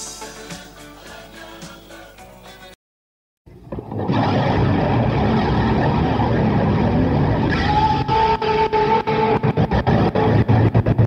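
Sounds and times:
vehicle engine: 3.9s - 8.2s.

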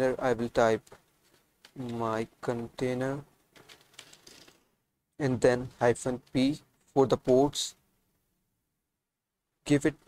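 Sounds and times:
person speaking: 0.0s - 1.0s, 1.7s - 3.3s, 5.2s - 7.8s.

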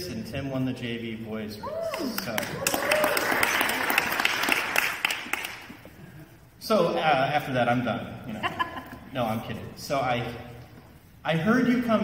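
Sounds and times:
crowd applauding: 1.9s - 5.9s.

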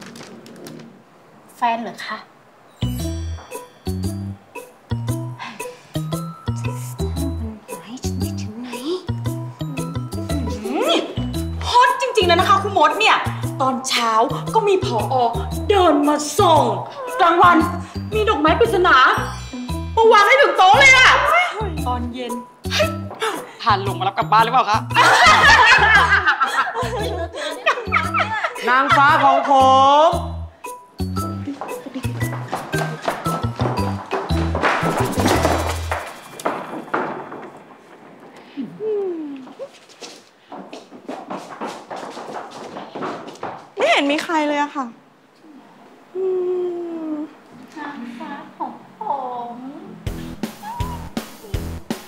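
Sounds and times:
background music with low notes: 2.8s - 36.0s, 50.0s - 52.0s
comic music with low beat: 9.1s - 11.6s, 50.1s - 52.0s
women laughing and giggling: 24.9s - 29.8s, 31.4s - 33.6s.

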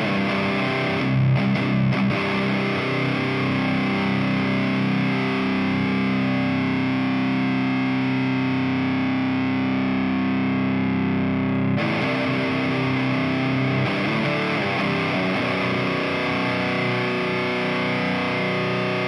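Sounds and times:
distorted electric guitar chords: 0.0s - 19.0s.

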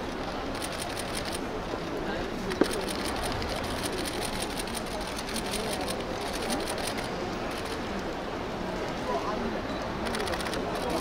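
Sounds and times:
crowd murmuring: 0.0s - 11.0s
rapid irregular clicking: 0.5s - 1.4s, 2.6s - 7.8s.

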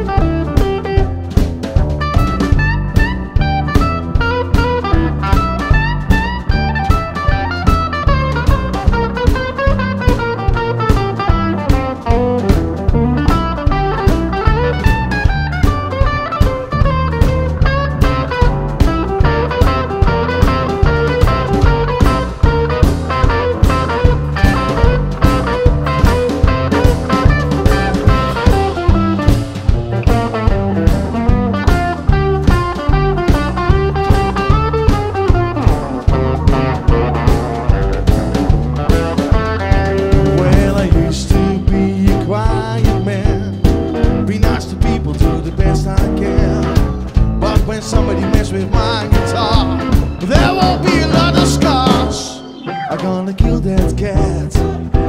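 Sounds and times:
blues band playing: 0.0s - 55.0s
electric guitar: 0.0s - 55.0s.

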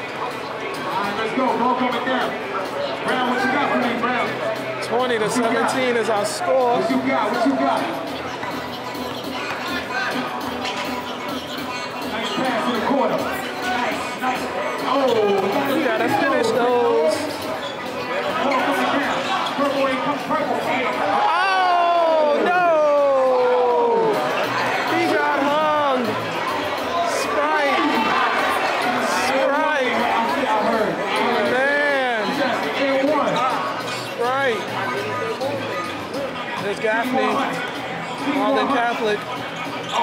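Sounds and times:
spectators chattering and calling: 0.0s - 40.0s
people shouting: 21.0s - 26.1s.

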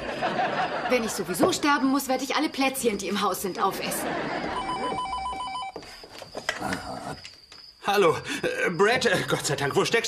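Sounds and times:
telephone bell ringing: 3.4s - 9.0s.

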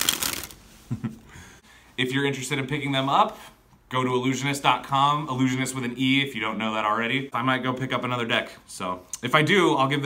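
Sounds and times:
playing cards fluttering: 0.0s - 0.6s.

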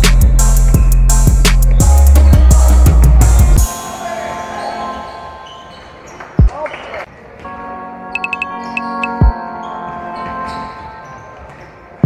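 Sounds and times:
music track: 7.4s - 11.5s.

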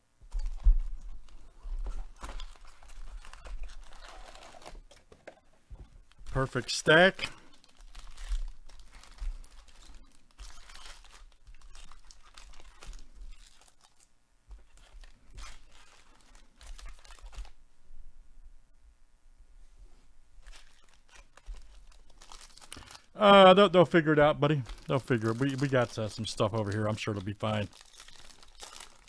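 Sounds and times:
foil wrappers crinkling: 0.3s - 17.6s, 20.4s - 29.0s.

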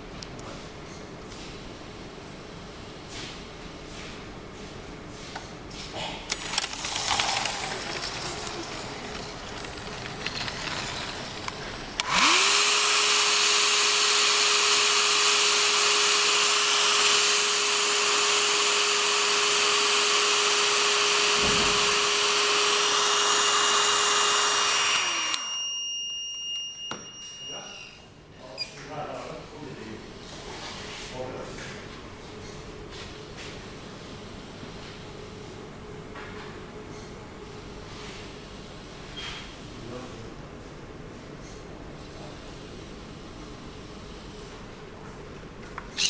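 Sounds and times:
hair dryer blowing: 11.9s - 25.6s
high piezo buzzer beep: 25.4s - 28.0s.

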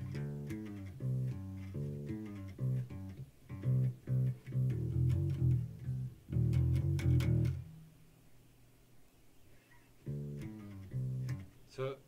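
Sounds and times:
electric bass plucked notes: 0.0s - 7.9s, 10.0s - 11.5s.

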